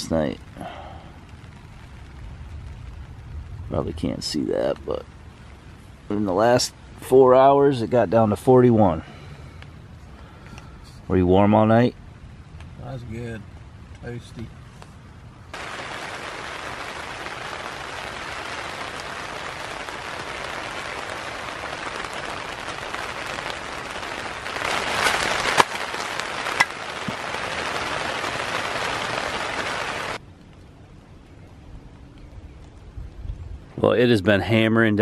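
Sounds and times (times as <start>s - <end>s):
heavy rain hissing: 0.0s - 30.2s.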